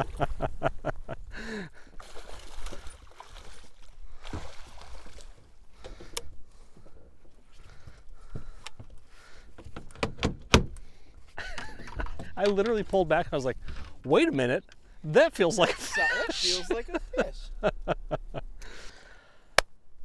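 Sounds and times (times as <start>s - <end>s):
faint water: 0.0s - 9.6s.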